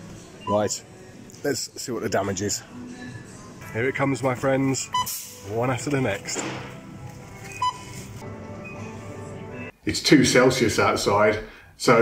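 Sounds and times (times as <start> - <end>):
background music: 0.0 - 12.0
barcode scanner beep: 4.8 - 5.4, 7.5 - 8.9.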